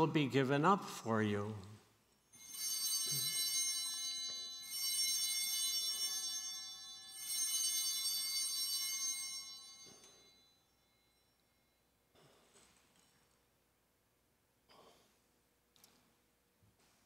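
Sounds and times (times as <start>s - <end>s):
small bells shaken: 2.3s - 11.8s.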